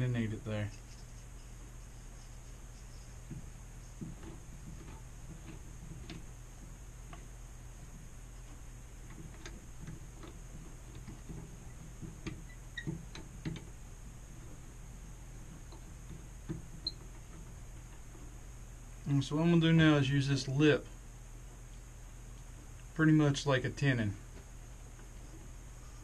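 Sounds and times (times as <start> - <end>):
faint hum: 0.0 - 26.0.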